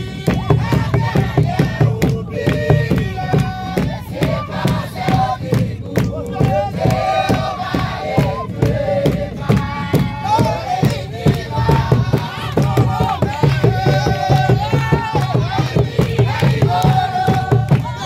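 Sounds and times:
congregation singing: 0.0 - 18.0
hand drums beating: 0.0 - 18.0.

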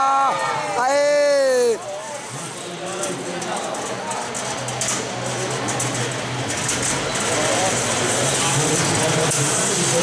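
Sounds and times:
crowd voices and shouts: 0.0 - 10.0.

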